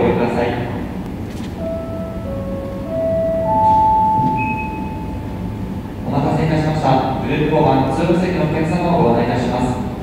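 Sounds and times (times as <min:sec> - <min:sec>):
public-address chime: 0:01.6 - 0:05.6.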